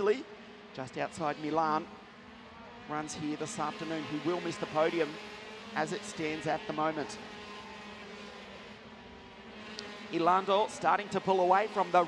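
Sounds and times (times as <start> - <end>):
racing kart engines droning: 0.0 - 12.0.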